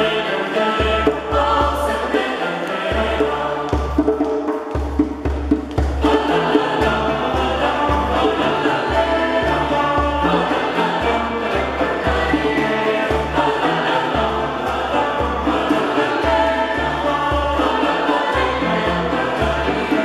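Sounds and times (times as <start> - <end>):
mixed choir singing: 0.0 - 4.9, 5.8 - 20.0
string ensemble playing: 0.0 - 20.0.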